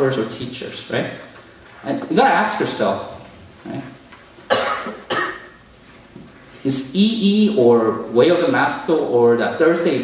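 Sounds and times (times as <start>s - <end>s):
person coughing: 4.5s - 5.6s.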